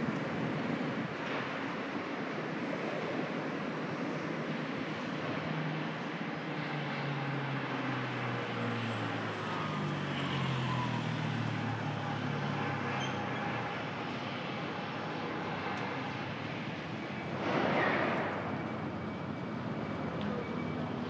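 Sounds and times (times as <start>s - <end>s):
city street traffic: 0.0s - 21.0s
vehicle engine humming low: 2.6s - 21.0s.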